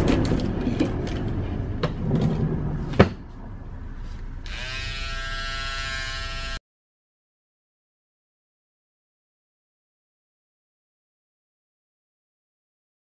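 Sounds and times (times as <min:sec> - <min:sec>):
electric hair clippers buzzing: 0:04.4 - 0:06.6.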